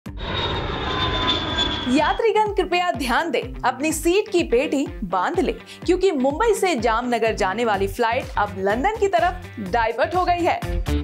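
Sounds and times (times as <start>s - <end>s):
airplane engine running: 0.0s - 2.1s.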